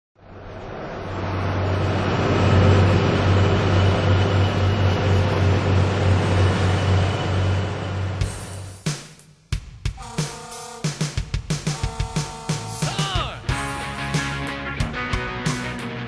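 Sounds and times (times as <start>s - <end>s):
road noise: 0.2s - 8.8s.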